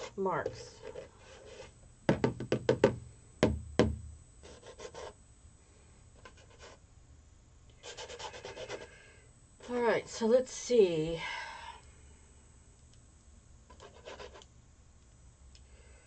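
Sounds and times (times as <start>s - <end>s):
brush strokes rubbing canvas: 0.8s - 1.7s
paintbrush tapping on canvas: 2.1s - 4.0s.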